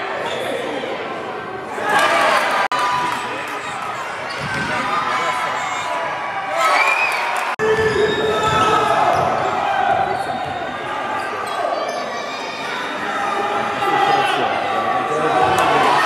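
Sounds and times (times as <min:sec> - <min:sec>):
players' voices and calls: 0:00.0 - 0:16.0
loud shout: 0:12.2 - 0:16.0.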